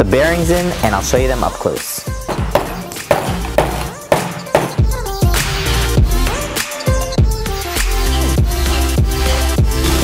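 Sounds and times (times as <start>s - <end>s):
electronic background music: 0.0s - 10.0s
mallet knocking: 2.3s - 5.0s.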